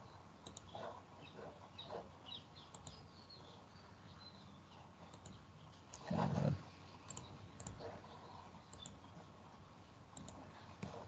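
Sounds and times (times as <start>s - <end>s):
computer mouse clicks: 0.4s - 0.8s, 2.6s - 3.0s, 5.1s - 6.0s, 7.0s - 9.1s, 10.1s - 11.0s.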